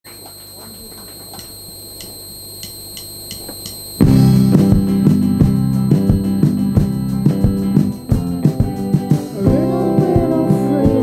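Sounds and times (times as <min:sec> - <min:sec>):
high-pitched electronic whine: 0:00.1 - 0:11.0
drum count-in clicks: 0:03.3 - 0:10.4
full band playing: 0:08.1 - 0:11.0.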